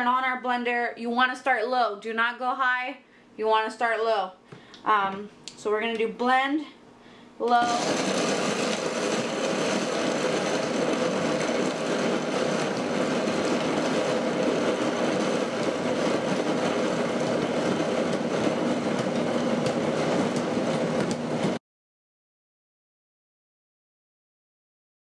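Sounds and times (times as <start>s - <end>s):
blender motor grinding nuts: 7.6s - 21.6s.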